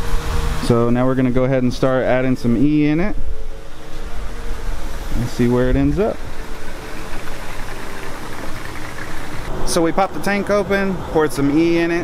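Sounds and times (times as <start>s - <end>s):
fuel pouring from a jug: 6.1s - 9.5s.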